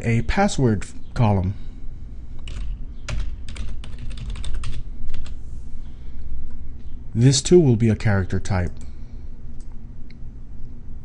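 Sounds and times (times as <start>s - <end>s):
computer keyboard typing: 2.4s - 5.4s.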